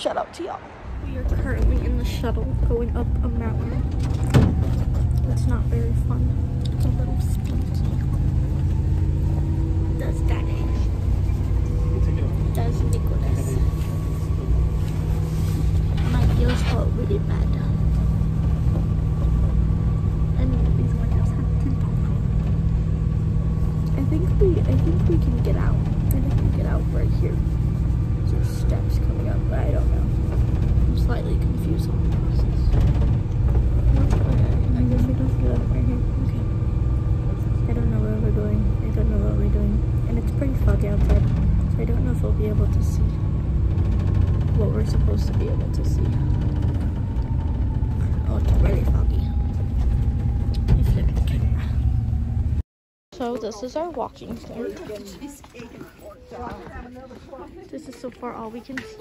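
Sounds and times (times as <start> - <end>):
engine and road rumble: 0.0 - 59.0.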